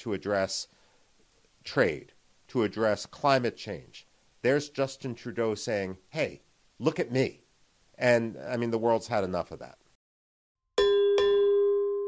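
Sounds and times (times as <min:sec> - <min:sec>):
notification bell chime: 0:10.8 - 0:12.0.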